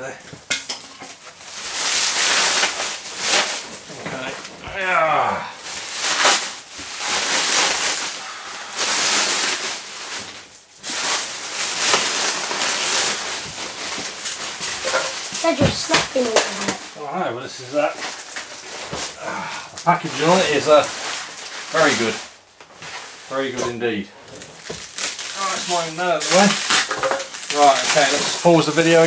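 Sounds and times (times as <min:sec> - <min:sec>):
plastic wrap crinkling and rustling: 0:00.0 - 0:29.0.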